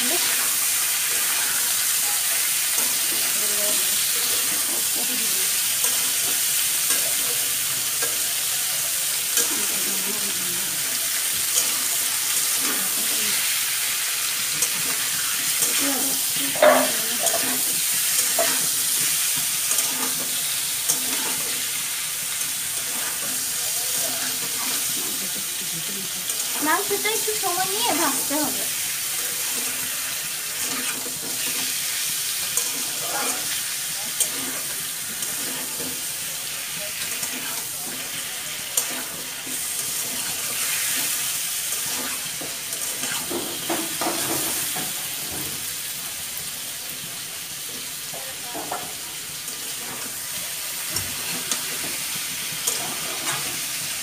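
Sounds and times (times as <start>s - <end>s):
metal spatula scraping wok: 0.0s - 45.7s, 48.6s - 54.0s
chicken sizzling in oil: 0.0s - 54.0s.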